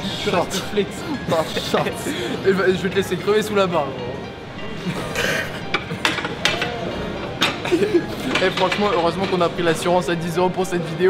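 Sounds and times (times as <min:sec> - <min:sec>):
men laughing breathlessly: 0:00.0 - 0:02.5, 0:07.6 - 0:08.4.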